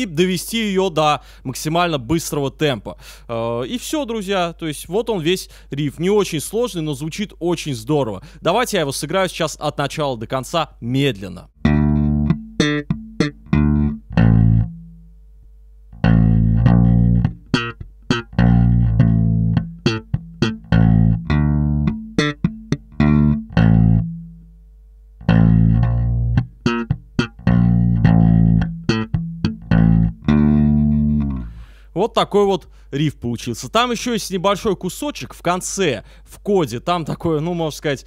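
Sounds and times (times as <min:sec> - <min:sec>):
electric bass guitar riff: 0:11.6 - 0:15.2, 0:15.9 - 0:31.9.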